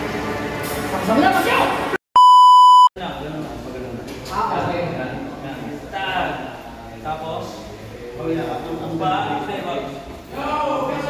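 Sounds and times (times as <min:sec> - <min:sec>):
electronic bleep: 0:02.2 - 0:02.9.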